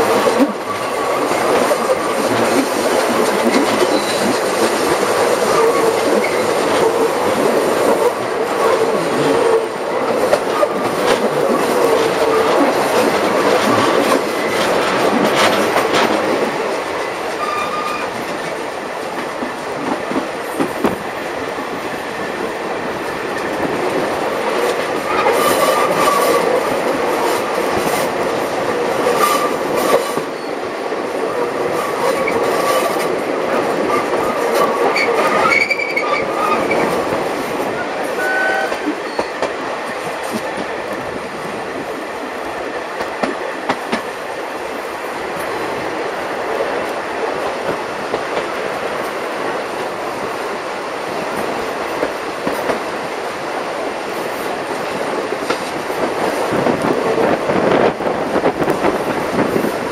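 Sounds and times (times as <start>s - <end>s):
train wheel clicks and rattle: 0.0s - 21.8s, 23.2s - 37.8s, 38.7s - 44.2s, 45.3s - 59.9s
wheels squealing: 3.2s - 4.5s, 17.4s - 18.1s.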